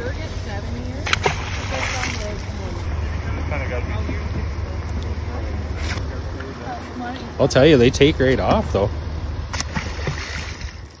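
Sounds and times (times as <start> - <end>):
low rumble: 0.0 - 11.0
fish splashing into water: 1.0 - 2.6, 9.5 - 11.0.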